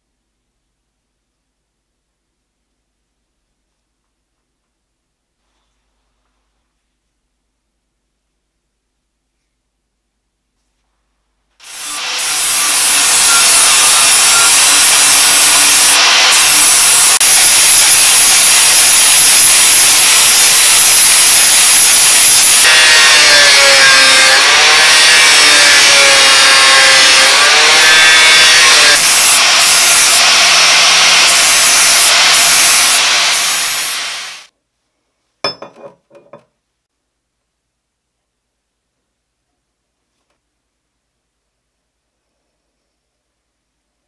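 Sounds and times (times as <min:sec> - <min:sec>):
angle grinder cutting metal: 0:11.6 - 0:34.5.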